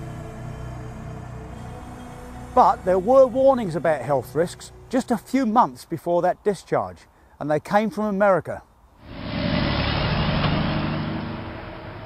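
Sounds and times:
vehicle engine and tyre noise: 9.0s - 12.0s.

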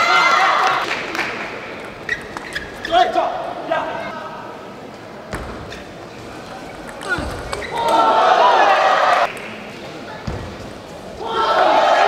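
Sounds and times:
loud shouting: 0.0s - 0.8s, 7.1s - 9.3s, 11.2s - 12.0s.

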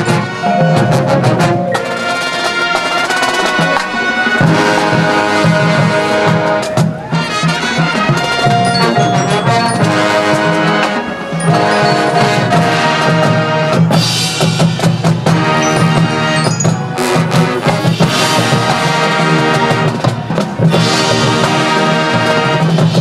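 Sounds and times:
full band hits: 0.0s - 23.0s
marching band playing: 0.0s - 23.0s
snare and bass drums: 0.0s - 23.0s.

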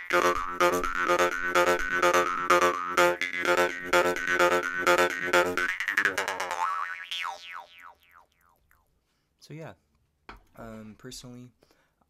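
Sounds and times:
jaw harp twanging: 0.0s - 8.6s.

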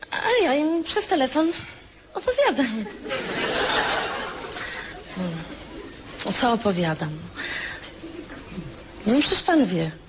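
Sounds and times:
audience chuckling and murmuring: 2.8s - 6.2s.

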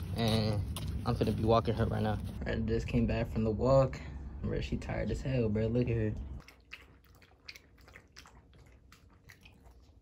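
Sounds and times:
dog lapping water from metal bowl: 6.4s - 10.0s.

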